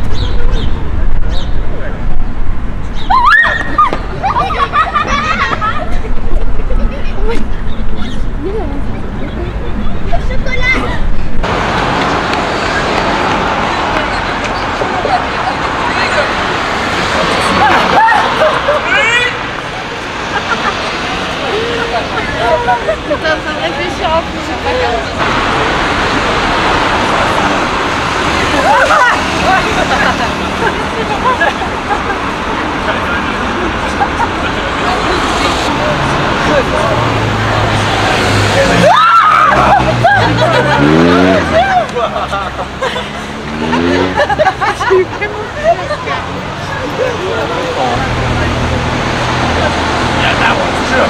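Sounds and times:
road traffic noise: 0.0s - 51.0s
voices of passers-by: 0.0s - 51.0s.

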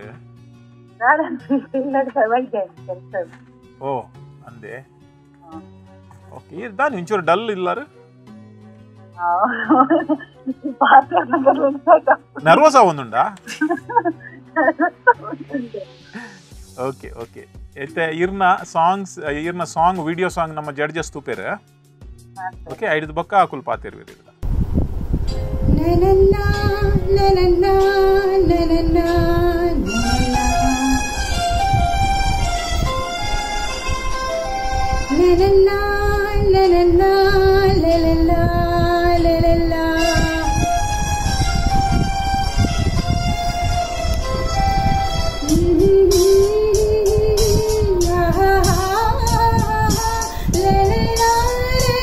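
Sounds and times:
instrumental backing track with beat: 8.8s - 24.5s, 25.1s - 52.0s
woman singing long notes: 25.7s - 31.4s, 35.1s - 40.7s, 45.4s - 52.0s.

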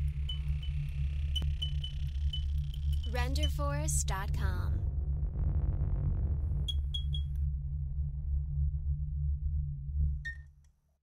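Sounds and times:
low bass drone: 0.0s - 10.5s.

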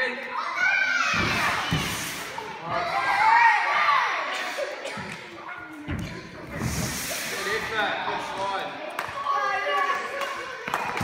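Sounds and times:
children shouting and cheering: 0.1s - 5.6s, 8.9s - 11.0s.

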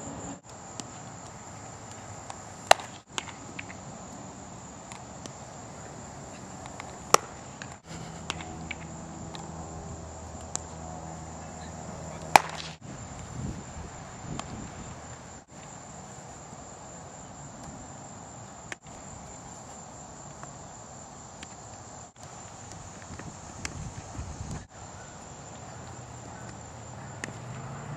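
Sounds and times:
high insect chorus: 0.0s - 27.9s
bat hitting baseball: 2.6s - 3.8s, 6.7s - 12.8s
low hum: 7.8s - 12.8s.

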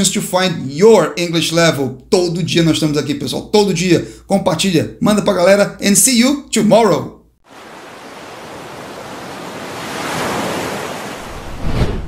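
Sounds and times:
ocean waves: 7.4s - 12.0s.

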